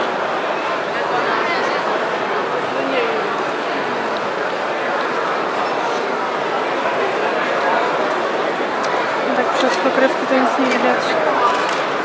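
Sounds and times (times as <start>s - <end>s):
crowd babble: 0.0s - 12.0s.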